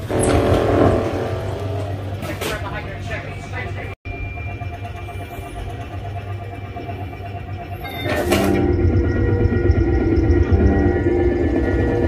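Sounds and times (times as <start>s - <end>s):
continuous low hum: 0.0s - 12.0s
electronic sci-fi power-up drone: 4.1s - 12.0s.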